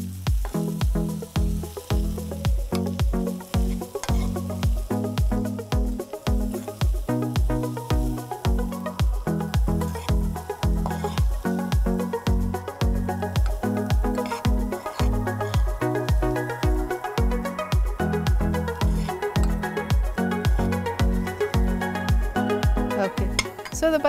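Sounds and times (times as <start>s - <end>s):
fast beat music with bass: 0.0s - 24.0s
food sizzling in frying pan: 0.0s - 24.0s.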